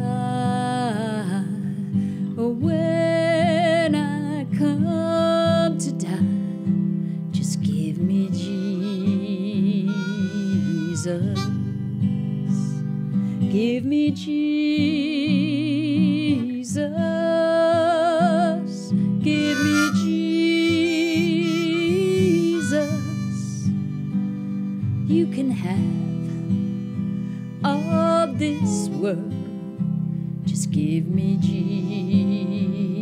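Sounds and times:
acoustic guitar accompaniment: 0:00.0 - 0:33.0
harmonica melody: 0:08.1 - 0:13.3, 0:19.2 - 0:29.9, 0:31.2 - 0:33.0.

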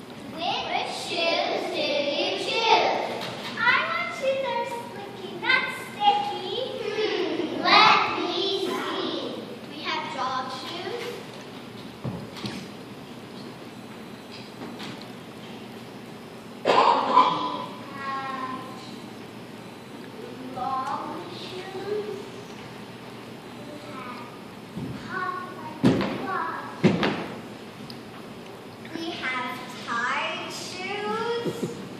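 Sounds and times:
young children speaking: 0:00.2 - 0:11.3, 0:16.7 - 0:19.1, 0:20.1 - 0:22.5, 0:23.5 - 0:26.9, 0:28.8 - 0:31.9.

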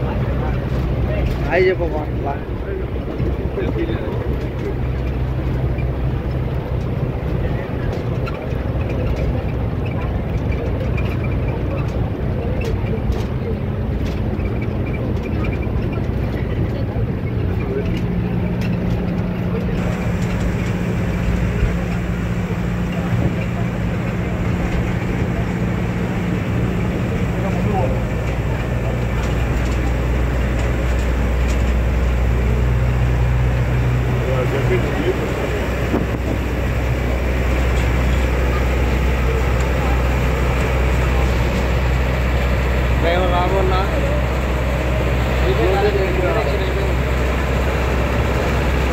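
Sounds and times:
bus engine and road hum: 0:00.0 - 0:48.9
passengers talking: 0:00.0 - 0:48.9.

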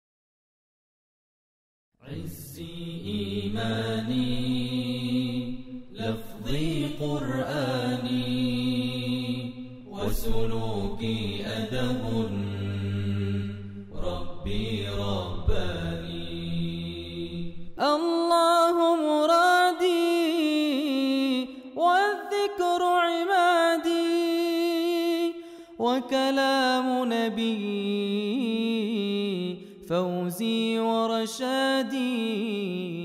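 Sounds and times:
vocal chant: 0:02.0 - 0:33.0.

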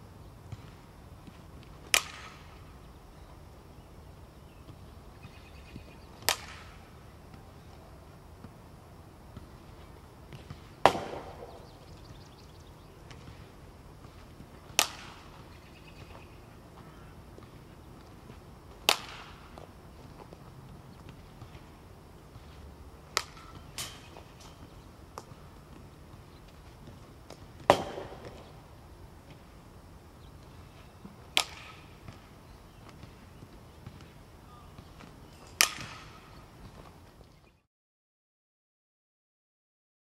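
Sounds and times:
bat hitting softballs: 0:01.8 - 0:02.7, 0:05.2 - 0:07.4, 0:10.3 - 0:12.0, 0:13.0 - 0:13.5, 0:14.6 - 0:16.2, 0:18.7 - 0:21.7, 0:22.4 - 0:29.4, 0:30.4 - 0:33.2, 0:33.9 - 0:36.5.

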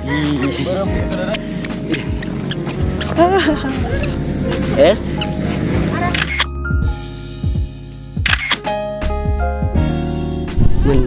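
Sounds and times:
background music: 0:00.0 - 0:11.0
camera shutter click: 0:06.1 - 0:06.5, 0:08.2 - 0:08.7.

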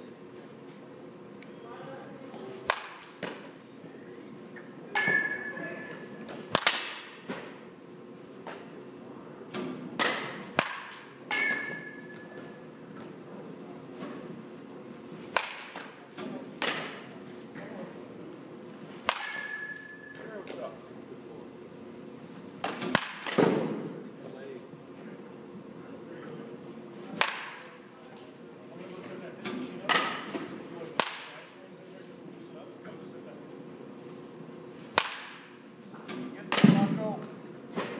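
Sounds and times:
bat cracking against baseball: 0:02.6 - 0:03.5, 0:06.3 - 0:07.6, 0:09.5 - 0:12.0, 0:15.2 - 0:17.2, 0:18.9 - 0:20.0, 0:22.6 - 0:23.9, 0:27.1 - 0:27.8, 0:29.6 - 0:31.5, 0:34.8 - 0:37.0.

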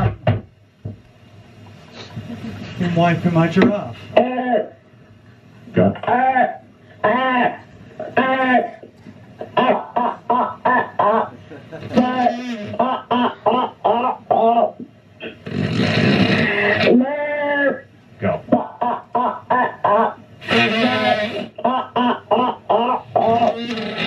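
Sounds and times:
loud rough noisy sound: 0:15.2 - 0:17.0, 0:18.5 - 0:24.0.

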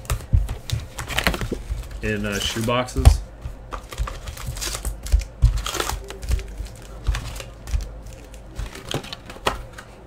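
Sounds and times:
wrappers crinkling: 0:01.0 - 0:03.0, 0:03.7 - 0:09.8.

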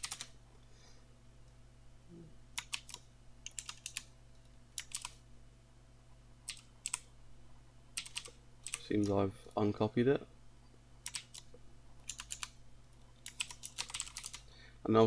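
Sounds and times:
faint low hum: 0:00.0 - 0:15.0
keyboard keys clicking: 0:02.6 - 0:04.1, 0:13.3 - 0:14.4.

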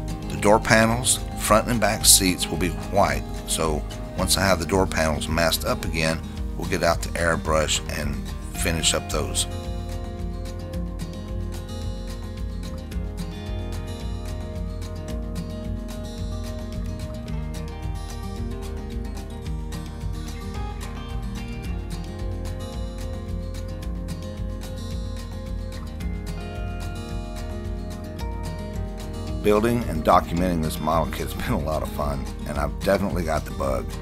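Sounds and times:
background music with held tones: 0:00.0 - 0:34.0.

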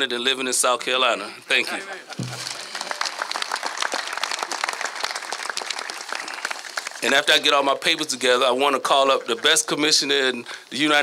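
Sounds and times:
crowd applauding: 0:02.1 - 0:09.7.

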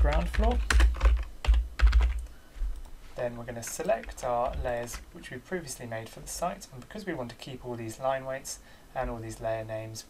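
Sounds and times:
typing on computer keyboard: 0:00.0 - 0:02.3.

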